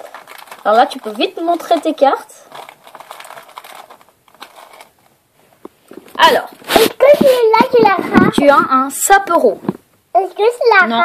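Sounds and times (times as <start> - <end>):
foil wrapper crinkling: 0.0 - 5.2.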